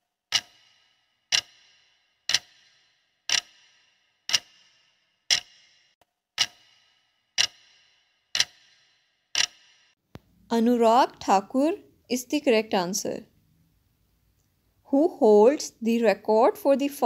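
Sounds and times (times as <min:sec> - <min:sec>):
clock ticking: 0:00.3 - 0:05.8, 0:06.4 - 0:10.0.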